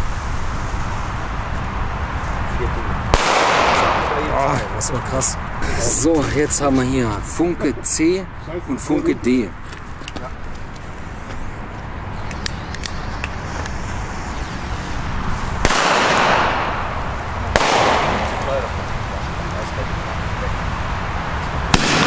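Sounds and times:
long echo: 3.0s - 4.7s, 15.6s - 19.4s
loud firecracker bangs: 3.0s - 4.7s, 15.5s - 19.0s, 21.6s - 22.0s.

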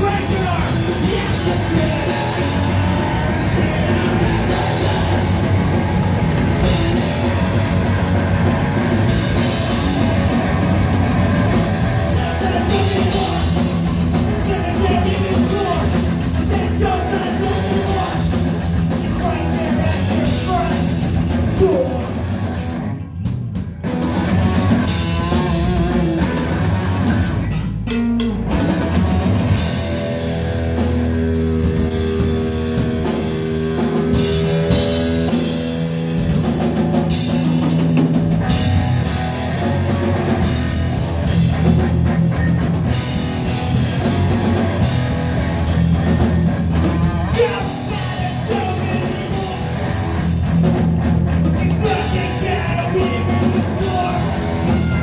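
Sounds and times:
distorted electric guitar: 0.0s - 55.0s
drum kit: 0.0s - 55.0s
person singing into microphone: 47.3s - 49.7s.

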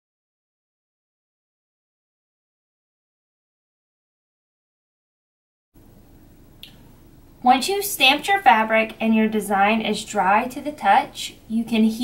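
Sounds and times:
small sharp click: 6.6s - 6.8s.

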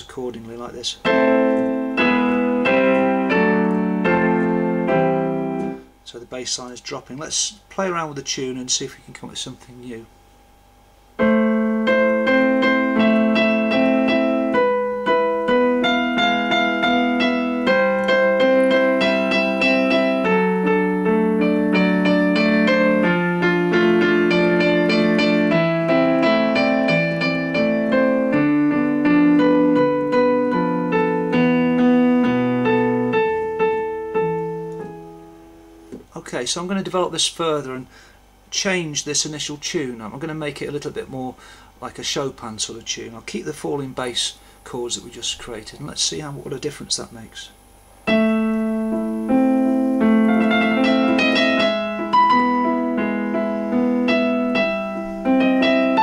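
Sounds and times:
piano melody: 1.0s - 6.0s, 11.1s - 36.0s, 48.0s - 56.0s.

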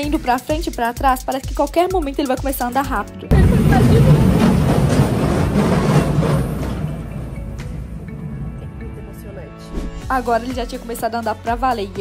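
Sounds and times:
background music: 0.0s - 12.0s
roller coaster rumbling on track: 3.3s - 9.5s.

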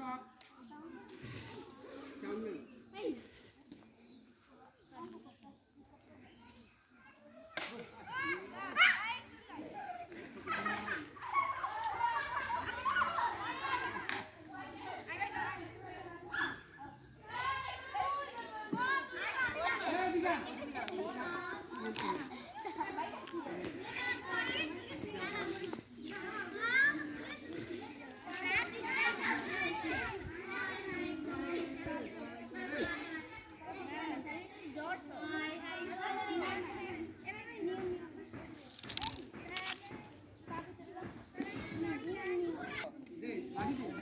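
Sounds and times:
children shouting: 7.6s - 37.2s.

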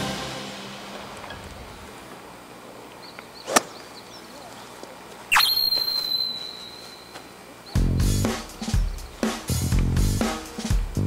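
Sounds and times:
upward sweep sound effect: 5.3s - 6.6s
high steady ringing tone: 5.3s - 7.2s.

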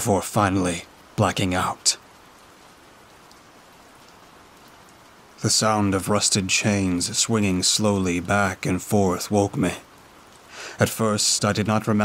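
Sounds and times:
faint steady rain: 0.0s - 12.0s.

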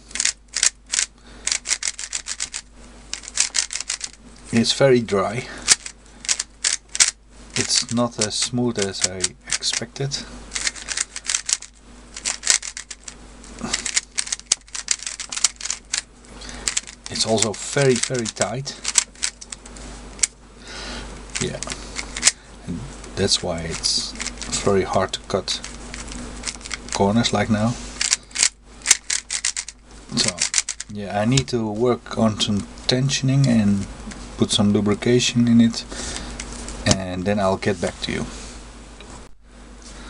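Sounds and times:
plastic puzzle cube layers clicking: 0.1s - 4.2s, 5.7s - 9.8s, 10.6s - 13.1s, 13.7s - 16.0s, 16.7s - 19.5s, 28.0s - 31.5s.

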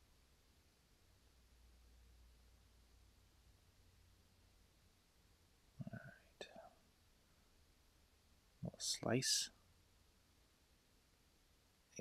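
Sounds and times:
faint whisper: 5.8s - 6.9s, 8.6s - 9.6s.

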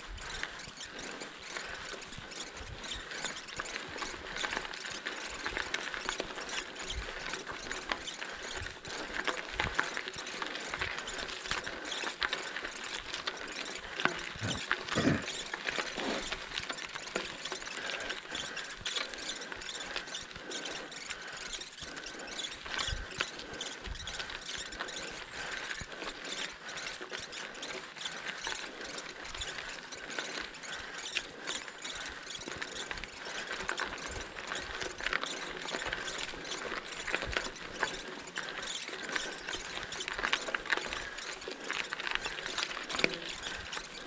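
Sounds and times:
bicycle frame rattling: 0.0s - 44.0s
bicycle tyres crunching on gravel: 0.1s - 44.0s.

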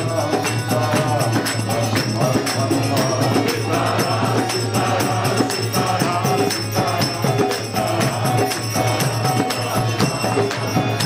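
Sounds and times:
group singing a chant: 0.0s - 11.0s
hand cymbals striking: 0.0s - 11.0s.

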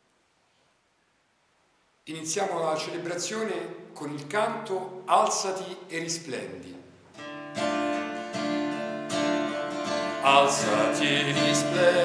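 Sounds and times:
acoustic guitar strumming chords: 7.1s - 12.0s.

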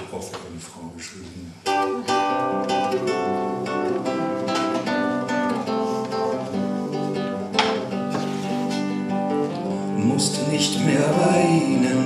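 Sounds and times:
acoustic guitar picking chords: 1.5s - 12.0s.

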